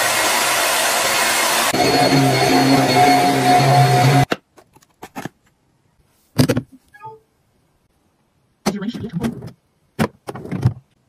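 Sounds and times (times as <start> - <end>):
handheld vacuum motor whine: 0.0 - 4.3.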